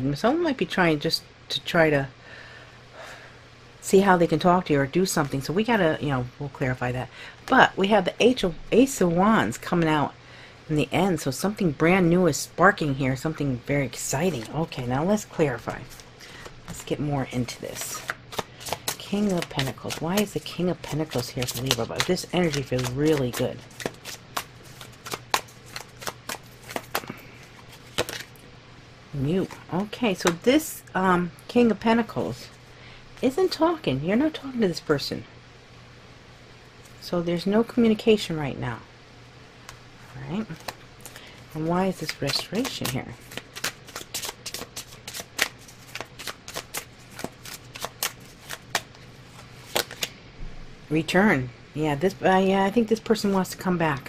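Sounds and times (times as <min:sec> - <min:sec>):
cards being shuffled by hand: 0:14.0 - 0:28.4, 0:40.1 - 0:50.1.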